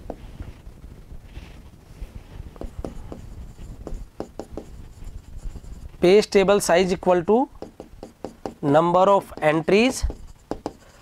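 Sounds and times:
pen scratching on screen: 2.6s - 6.1s, 7.6s - 11.0s.

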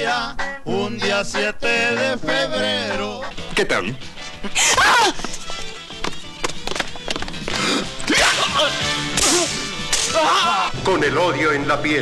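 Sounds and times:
whip-like swishing strikes: 9.1s - 10.2s.

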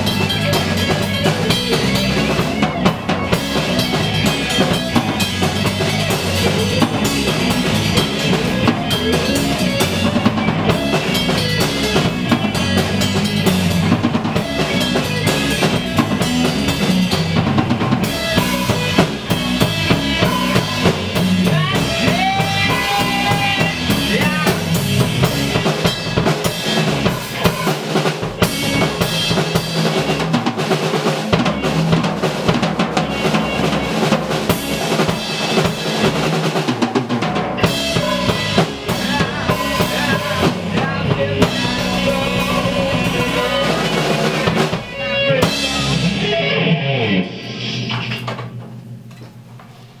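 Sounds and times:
bass guitar: 0.0s - 50.0s
drum kit: 0.0s - 50.0s.

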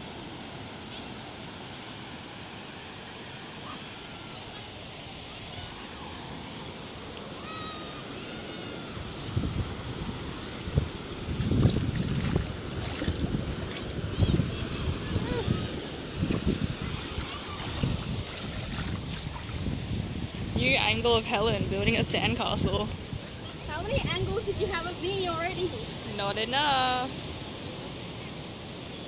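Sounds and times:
surf washing on shore: 0.0s - 29.0s
wind buffeting microphone: 8.6s - 27.7s.

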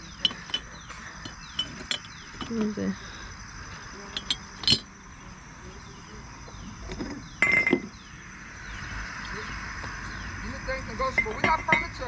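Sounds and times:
ceramic figurines clinking: 0.1s - 2.6s, 4.1s - 4.9s.

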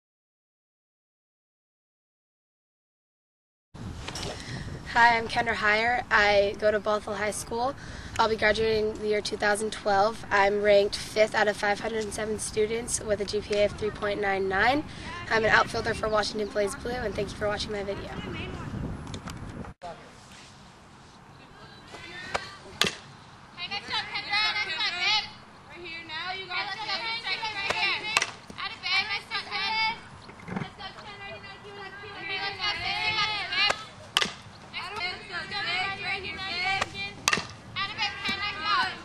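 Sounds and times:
softball cracks: 22.3s - 23.1s, 27.6s - 28.6s, 33.6s - 35.1s, 36.7s - 37.6s
high-pitched voices chattering: 23.5s - 39.0s.

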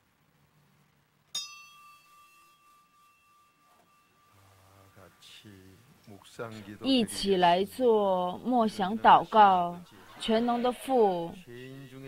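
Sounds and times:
small metal bell ringing: 1.3s - 4.7s.

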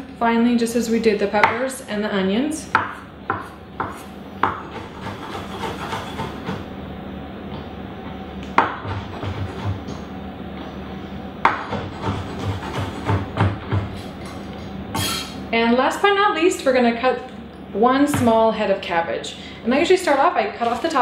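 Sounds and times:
knife chopping on wooden board: 2.7s - 6.6s, 8.6s - 10.0s, 11.4s - 14.0s.

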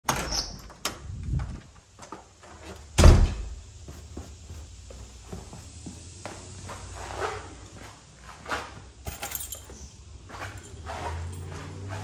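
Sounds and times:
heavy thud: 3.0s - 3.6s.

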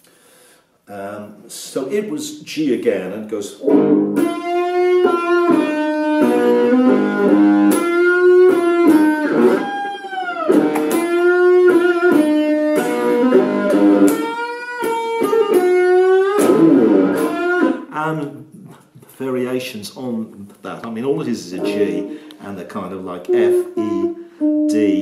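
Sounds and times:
electric guitar bluesy riff: 3.6s - 18.0s, 21.5s - 25.0s.

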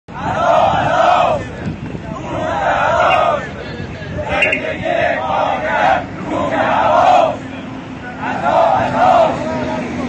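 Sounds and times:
crowd chanting in unison: 0.1s - 3.6s, 4.2s - 10.0s.

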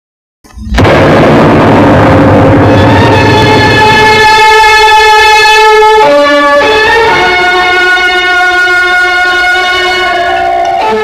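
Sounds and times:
loud distorted noise blast: 0.5s - 11.0s.

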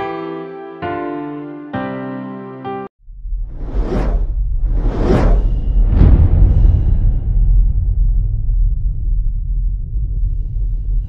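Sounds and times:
deep rumble: 3.0s - 11.0s
cinematic whooshes: 3.1s - 11.0s.

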